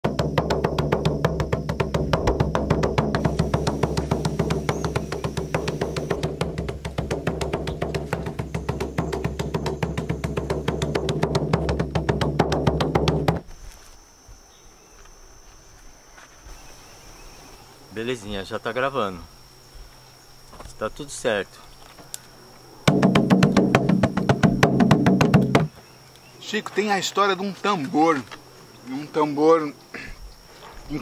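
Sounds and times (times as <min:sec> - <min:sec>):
fast drumbeats over a drone: 0:00.0 - 0:13.4, 0:22.9 - 0:25.7
high-pitched insect drone: 0:00.0 - 0:31.0.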